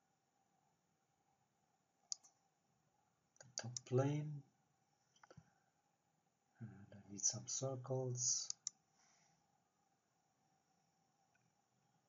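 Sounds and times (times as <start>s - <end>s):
computer mouse click: 2.1s - 2.3s, 3.4s - 3.9s, 8.5s - 8.8s.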